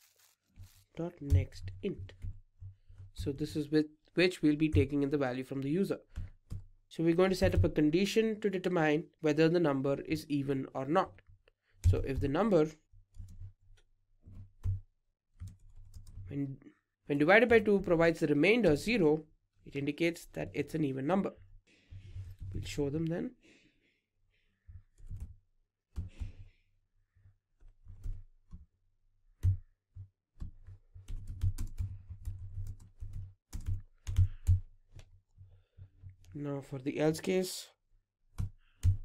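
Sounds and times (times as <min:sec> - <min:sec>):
computer keyboard keystrokes: 0:30.4 - 0:35.0, 0:38.4 - 0:39.0.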